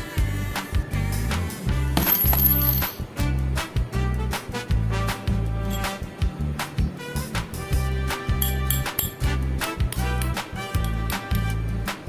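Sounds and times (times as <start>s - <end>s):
metallic coin clink: 2.0s - 3.1s, 5.7s - 6.1s, 8.4s - 9.3s.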